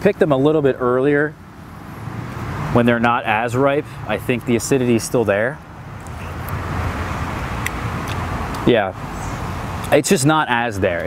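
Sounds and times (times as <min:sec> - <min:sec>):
outdoor rushing noise: 0:00.0 - 0:11.0.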